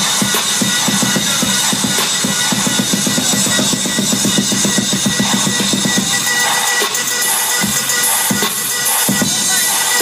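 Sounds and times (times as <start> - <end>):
loud live electronic music: 0.0 - 10.0.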